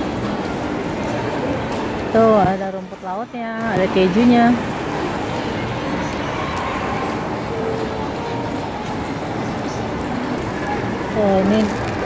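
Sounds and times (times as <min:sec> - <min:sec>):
faint music: 0:00.0 - 0:12.0.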